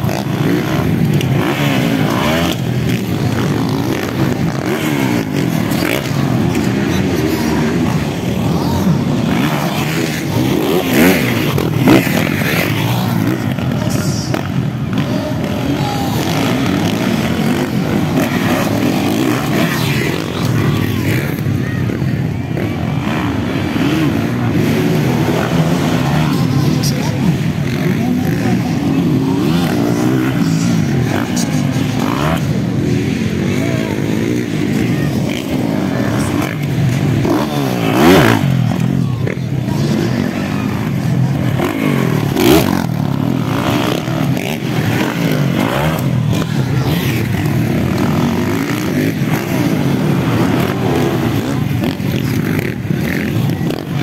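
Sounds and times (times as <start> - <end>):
dirt bike engines revving: 0.0 - 54.0.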